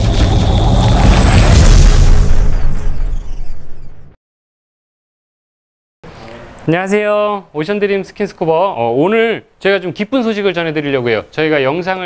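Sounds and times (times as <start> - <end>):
deep boom with rumble: 0.0 - 4.2.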